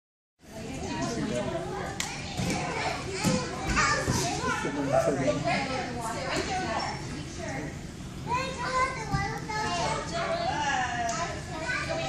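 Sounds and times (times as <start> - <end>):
children chattering and calling out: 0.5 - 12.0.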